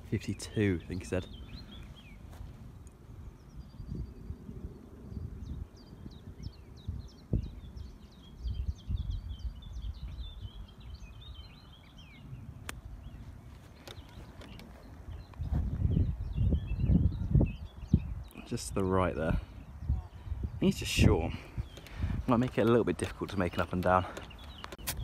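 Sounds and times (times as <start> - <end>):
birds chirping: 0.0 - 25.0
wind rumble on microphone: 0.0 - 25.0.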